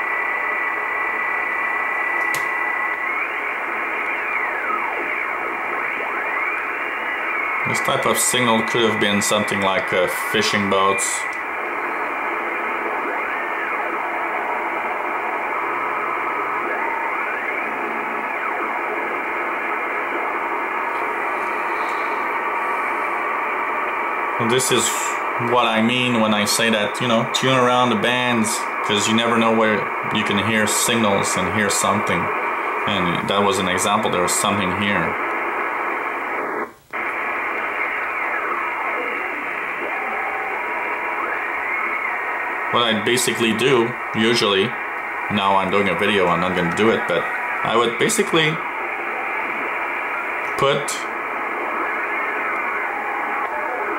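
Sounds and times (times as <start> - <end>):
shortwave radio static: 0.0 - 53.9.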